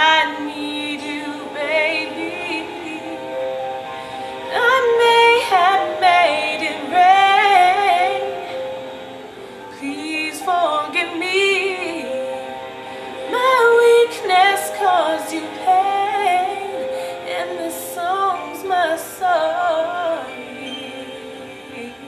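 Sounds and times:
woman singing ballad: 0.0s - 8.8s, 9.7s - 22.0s
soft backing music: 0.0s - 22.0s.

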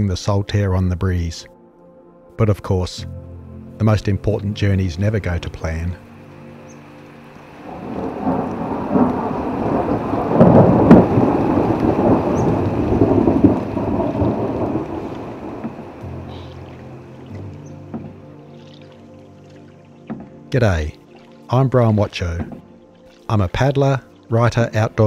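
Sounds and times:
thunder roll with sharp crack: 7.6s - 16.2s.

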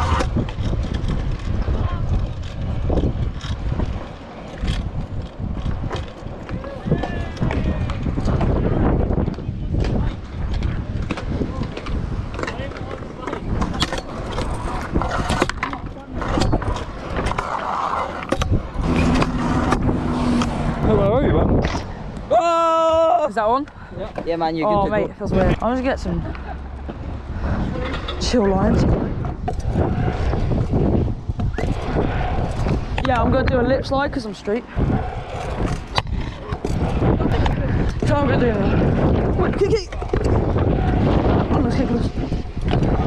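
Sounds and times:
scooter wheels rumbling on concrete: 0.0s - 43.0s.

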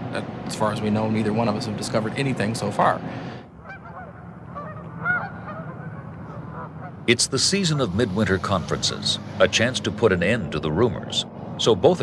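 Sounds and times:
geese honking in flight: 3.6s - 9.1s.

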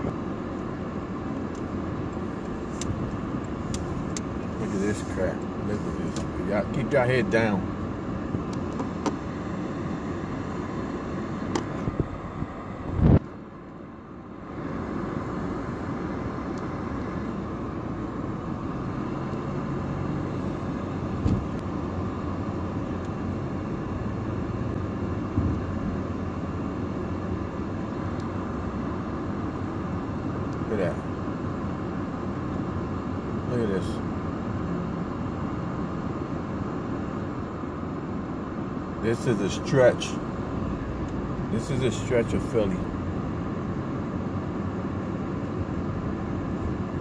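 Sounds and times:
car road and engine noise: 0.0s - 47.0s.

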